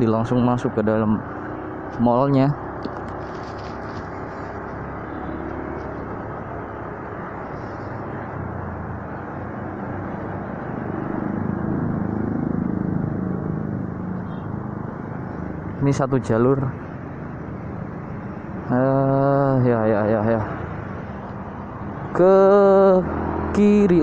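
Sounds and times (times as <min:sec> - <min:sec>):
wind and road noise: 0:00.0 - 0:24.0
motorcycle engine running: 0:01.2 - 0:16.0.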